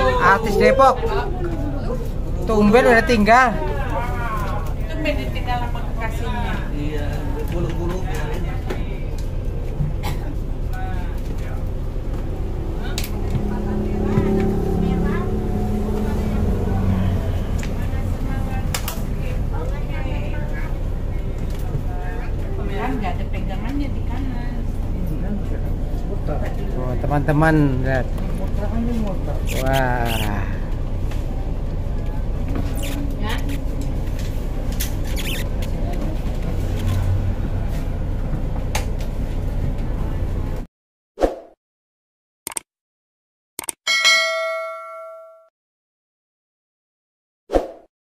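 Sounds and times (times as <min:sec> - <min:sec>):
bus engine rumble: 0:00.0 - 0:40.7
indistinct talking: 0:10.0 - 0:27.0, 0:28.0 - 0:34.0
bell chime ding: 0:43.9 - 0:45.5.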